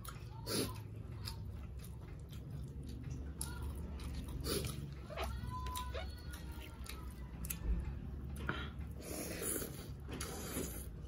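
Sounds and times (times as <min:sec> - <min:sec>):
chewing: 0:00.0 - 0:11.0.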